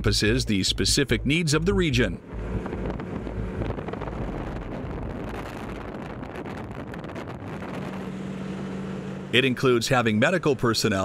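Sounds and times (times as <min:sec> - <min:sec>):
snowmobile engine running: 0:00.1 - 0:11.0
wind buffeting microphone: 0:02.2 - 0:09.3.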